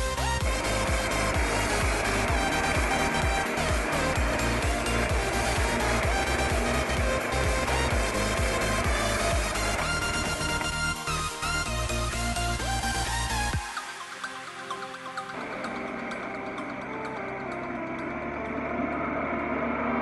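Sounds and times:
electronic music with steady beat: 0:00.0 - 0:20.0
drill press cutting wood: 0:00.4 - 0:13.6.

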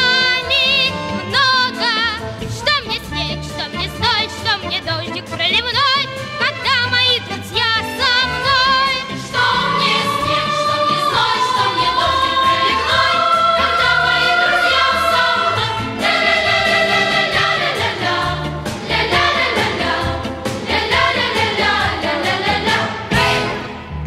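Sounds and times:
song with sung melody: 0:00.0 - 0:23.7.

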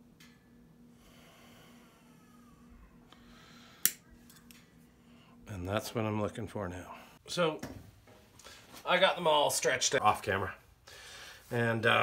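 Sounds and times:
faint breathing: 0:00.8 - 0:04.0, 0:04.8 - 0:05.5, 0:08.4 - 0:08.8, 0:10.8 - 0:11.5.

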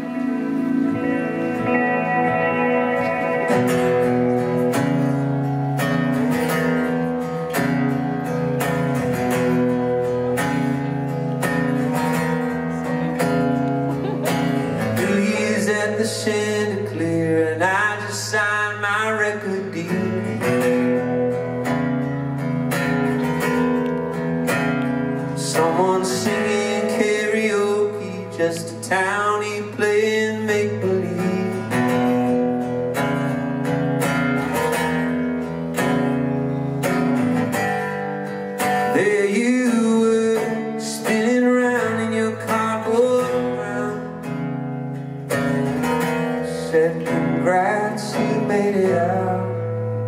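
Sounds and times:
acoustic guitar strumming: 0:00.0 - 0:50.0
man singing: 0:14.5 - 0:21.5, 0:25.2 - 0:32.4, 0:38.6 - 0:44.4, 0:46.1 - 0:50.0.

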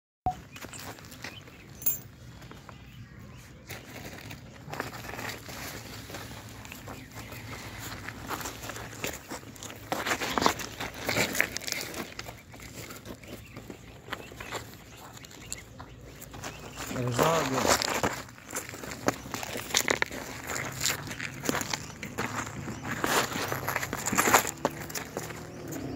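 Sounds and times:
metal chain clinking: 0:01.8 - 0:02.1
pebbles shifting: 0:03.7 - 0:25.9.

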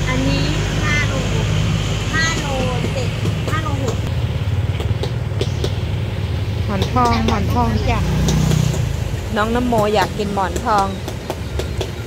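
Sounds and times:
low mechanical rumble: 0:00.0 - 0:12.0.

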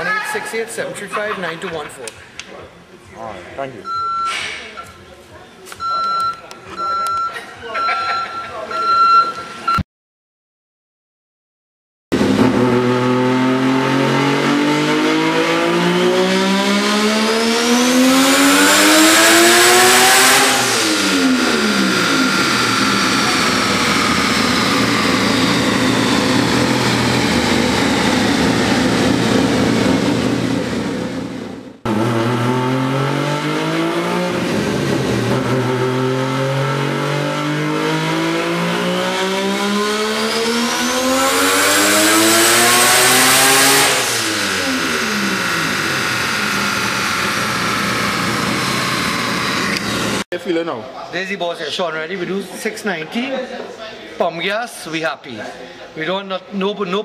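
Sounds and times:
rotary engine revving at full throttle: 0:12.1 - 0:50.3.

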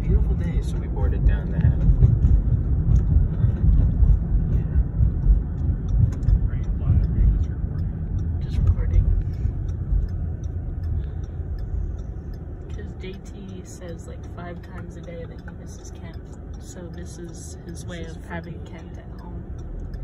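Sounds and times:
car interior road rumble: 0:00.0 - 0:20.0.

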